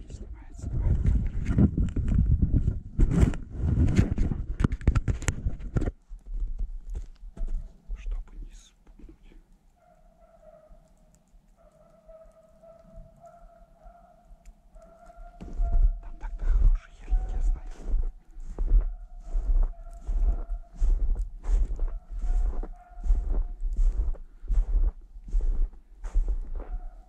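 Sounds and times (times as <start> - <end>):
footsteps crunching in snow: 15.2 - 27.0.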